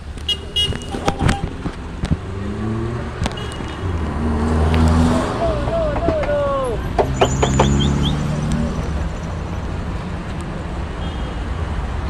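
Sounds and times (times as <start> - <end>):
vehicle engines rumbling: 0.0 - 12.0
wavering voice-like call: 5.0 - 6.8.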